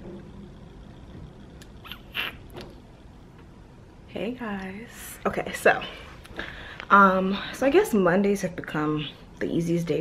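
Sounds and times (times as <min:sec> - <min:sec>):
short squeaky clicks: 0:01.8 - 0:02.6.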